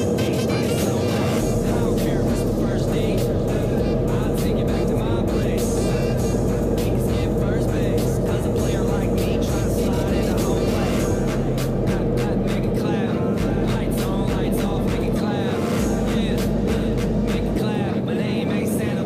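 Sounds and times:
pop song singing: 0:00.0 - 0:19.0
steady drum beat: 0:01.4 - 0:12.7, 0:13.4 - 0:15.2, 0:15.8 - 0:17.6.

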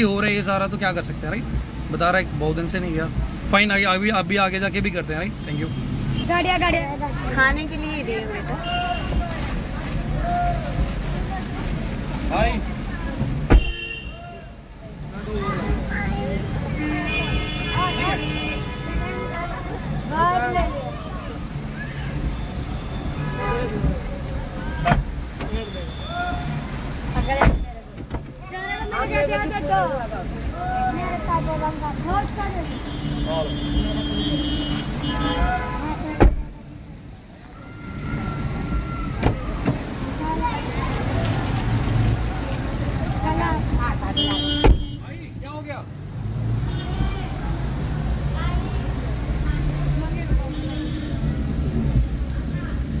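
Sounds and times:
people's voices: 0:00.0 - 0:53.0
rain: 0:00.0 - 0:53.0
street traffic: 0:00.0 - 0:53.0
car door slamming: 0:13.2 - 0:14.0, 0:24.8 - 0:25.6, 0:27.2 - 0:28.4, 0:36.1 - 0:36.6, 0:39.2 - 0:39.9, 0:44.2 - 0:45.0.

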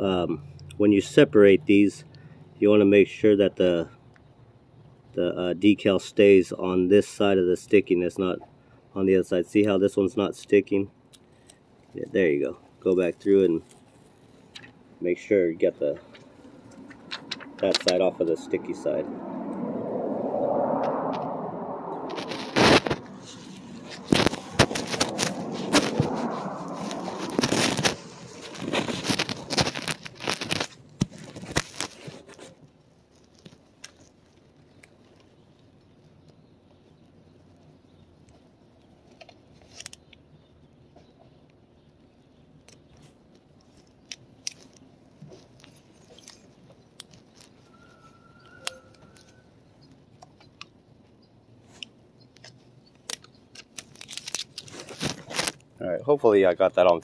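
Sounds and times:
decal sheet crinkling and rustling: 0:12.9 - 0:18.4, 0:22.0 - 0:36.4, 0:38.3 - 0:40.2, 0:42.6 - 0:55.7.

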